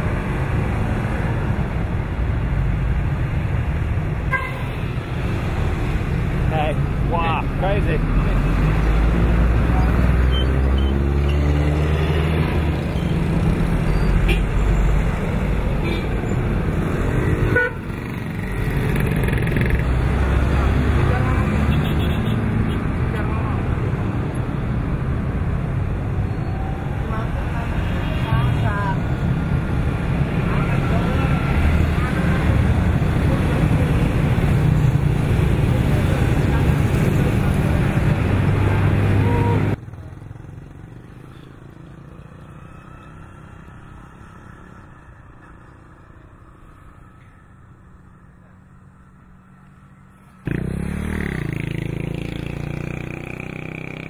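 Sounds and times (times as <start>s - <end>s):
low traffic rumble: 0.0s - 54.0s
vehicle engines passing: 0.0s - 54.0s.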